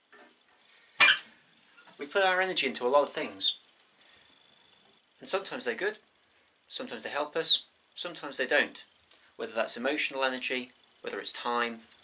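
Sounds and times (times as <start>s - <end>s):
stove door high squeak: 1.0s - 2.2s.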